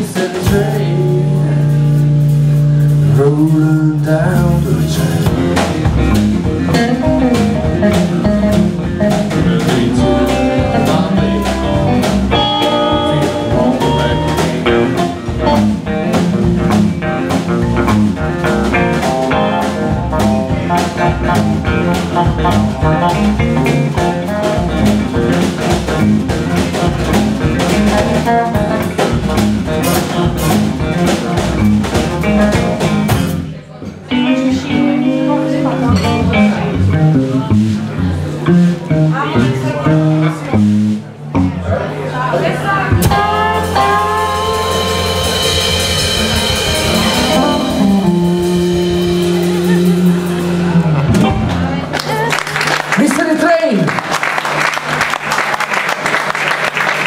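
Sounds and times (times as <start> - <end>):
blues band playing: 0.0 - 57.0.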